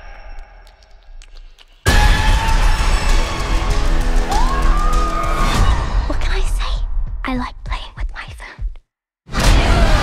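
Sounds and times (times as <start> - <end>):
person whispering: 7.4 - 8.8.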